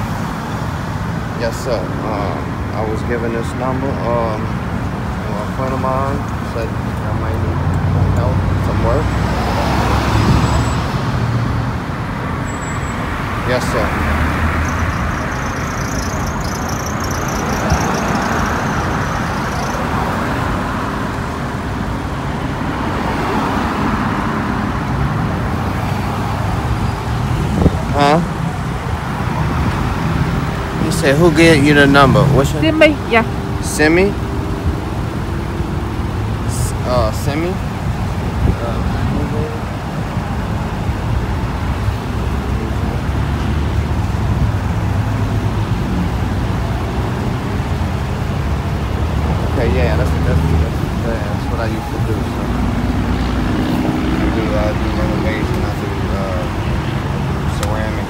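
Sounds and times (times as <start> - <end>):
traffic rumble: 0.0 - 58.0.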